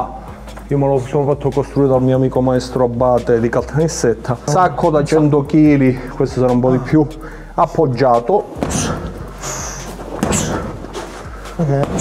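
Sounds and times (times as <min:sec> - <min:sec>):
kicks thudding on punching bag: 0:08.6 - 0:09.3, 0:10.0 - 0:11.0.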